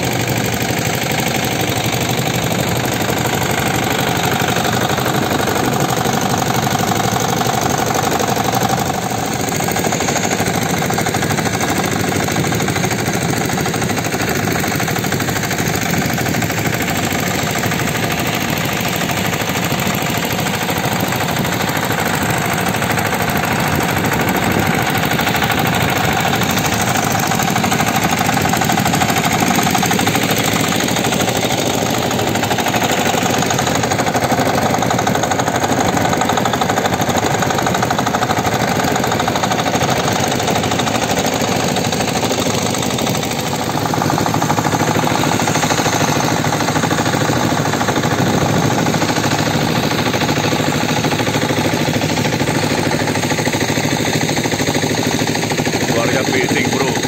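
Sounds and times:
boat engines knocking: 0.0s - 57.0s.

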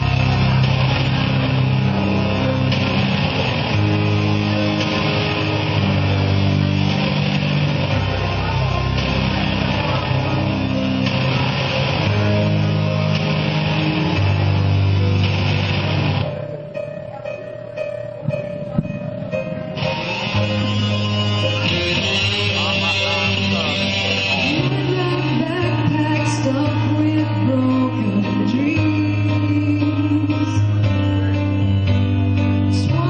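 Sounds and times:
bass guitar: 0.0s - 16.8s, 17.7s - 33.0s
loud electric guitar: 0.0s - 33.0s
rock band playing live: 0.0s - 33.0s.

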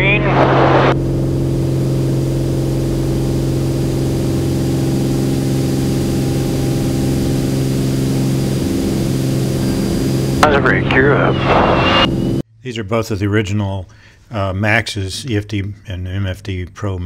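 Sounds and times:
propeller plane engine drone: 0.0s - 12.4s.

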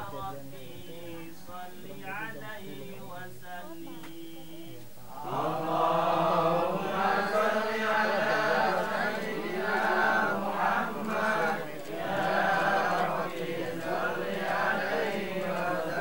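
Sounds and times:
group chanting prayers: 0.0s - 16.0s.

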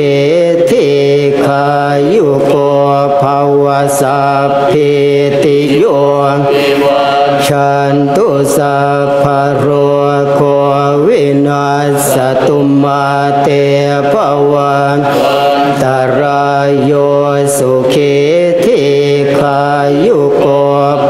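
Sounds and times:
monks chanting in unison: 0.0s - 21.0s.

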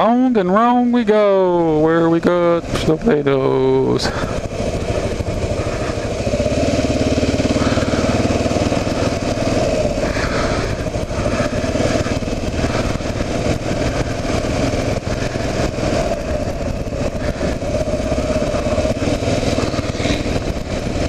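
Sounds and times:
motorcycle engine running: 0.0s - 21.0s
rush of noise: 1.4s - 21.0s.

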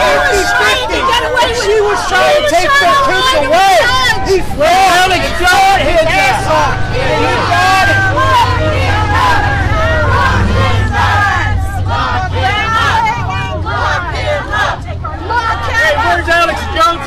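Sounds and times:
adults shouting in argument: 0.0s - 17.0s
crowd babble: 0.0s - 17.0s.

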